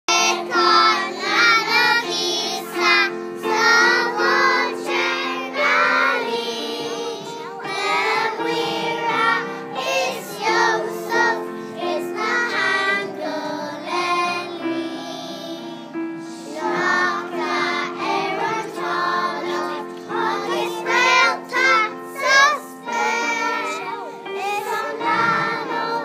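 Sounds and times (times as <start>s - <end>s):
children singing together: 0.1s - 26.0s
instrumental accompaniment: 0.1s - 26.0s.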